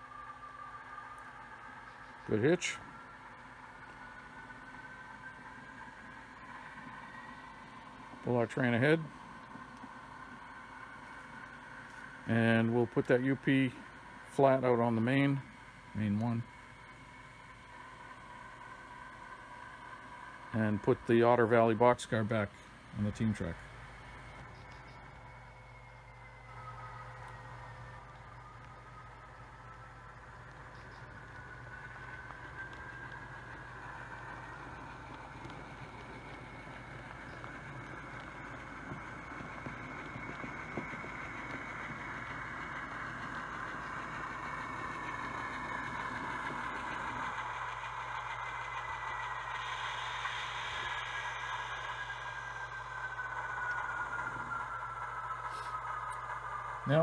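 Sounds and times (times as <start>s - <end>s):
model train motor whine: 0.0s - 57.0s.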